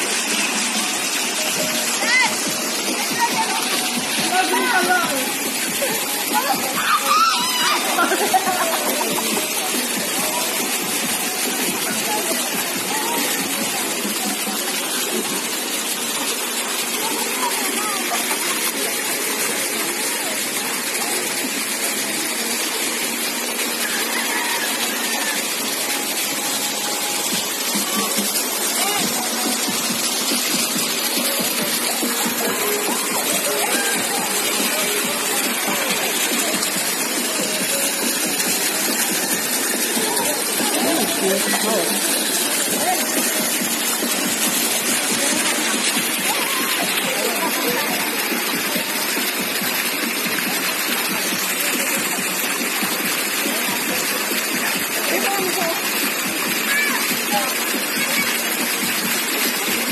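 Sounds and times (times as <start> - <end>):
flowing water rushing: 0.0 - 59.9.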